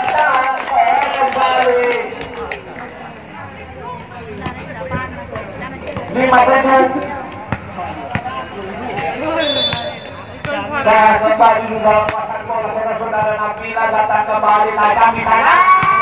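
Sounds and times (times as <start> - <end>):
chatter of voices: 0.0 - 16.0.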